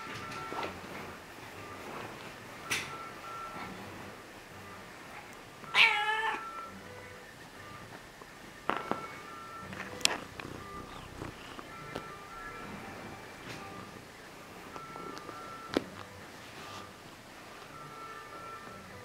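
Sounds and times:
cat meowing: 5.7 - 6.6.

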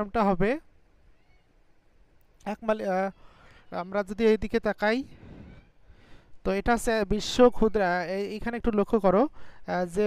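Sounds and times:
faint high chirp: 1.1 - 1.6.

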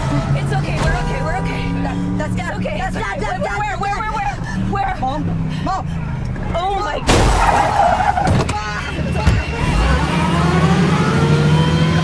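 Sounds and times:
car engine hum: 0.0 - 12.0
woman crying: 8.6 - 9.2.

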